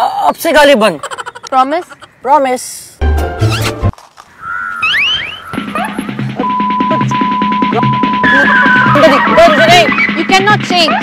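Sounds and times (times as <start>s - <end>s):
high swooping whistle tone: 4.4s - 10.1s
music with fast steady beat: 5.6s - 11.0s.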